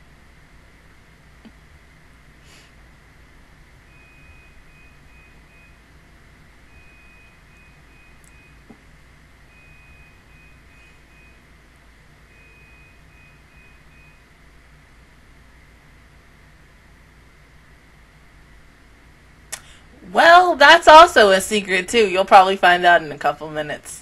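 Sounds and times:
low steady hum: 0:00.0 - 0:24.0
high-pitched electronic beeping: 0:03.9 - 0:05.8, 0:09.5 - 0:11.4, 0:12.3 - 0:14.2.

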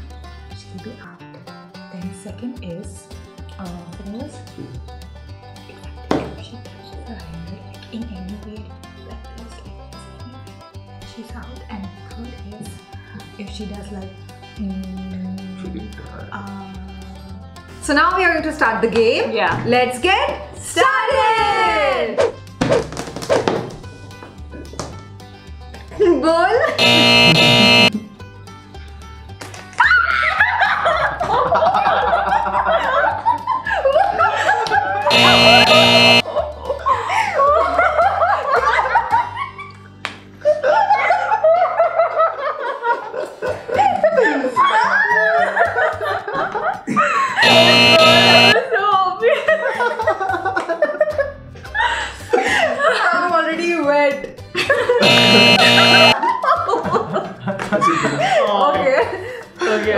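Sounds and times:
background music with steady beat: 0:00.0 - 0:29.7, 0:54.3 - 0:59.9
loud buzzy tone: 0:26.8 - 0:27.9, 0:35.1 - 0:36.2, 0:47.4 - 0:48.6, 0:55.0 - 0:56.2
people giggling and laughing: 0:30.0 - 0:35.1, 0:36.2 - 0:47.4, 0:48.6 - 0:53.3, 0:54.5 - 0:55.0, 0:55.8 - 0:59.9
held musical chord: 0:35.1 - 0:36.2.

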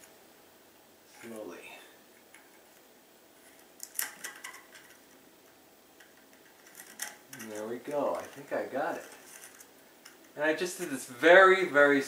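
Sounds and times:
person's voice: 0:01.1 - 0:02.0, 0:07.3 - 0:09.1, 0:10.4 - 0:12.0.

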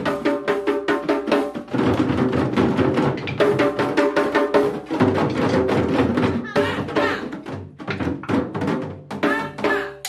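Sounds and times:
hand drums beaten together: 0:00.0 - 0:10.0.

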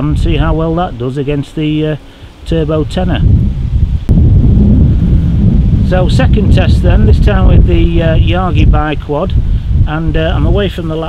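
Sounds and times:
wind buffeting microphone: 0:00.0 - 0:01.0, 0:02.4 - 0:11.0.

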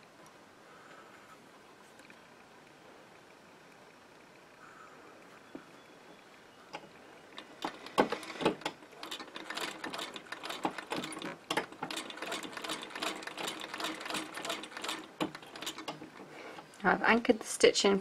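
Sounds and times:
sewing machine stitching: 0:07.4 - 0:16.3.

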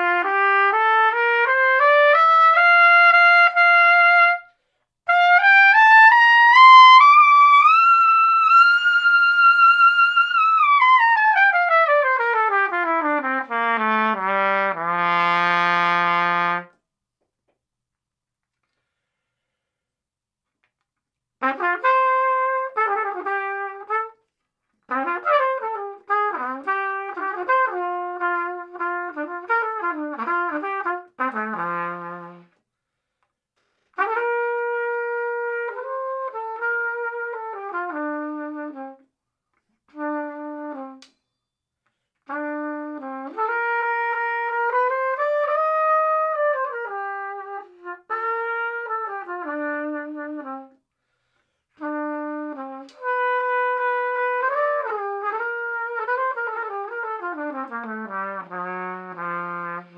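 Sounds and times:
solo trumpet: 0:00.0 - 0:16.8, 0:21.4 - 0:33.2, 0:33.8 - 0:59.9.

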